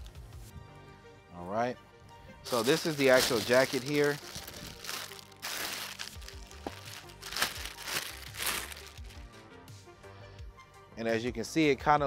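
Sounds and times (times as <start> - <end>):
plastic bag crinkling: 2.5 - 9.2.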